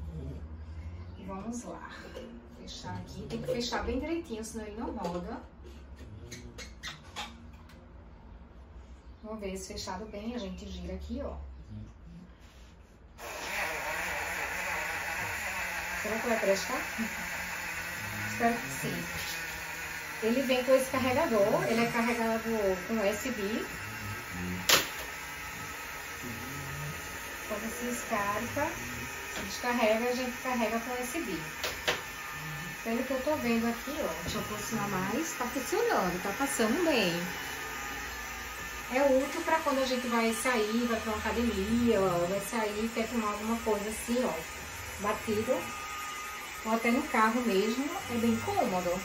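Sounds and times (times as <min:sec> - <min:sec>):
mini blender running: 0:13.2 - 0:49.0.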